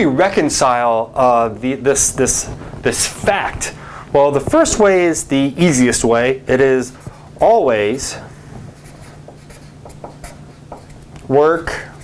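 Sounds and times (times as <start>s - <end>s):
marker scratching on paper: 8.7s - 12.0s.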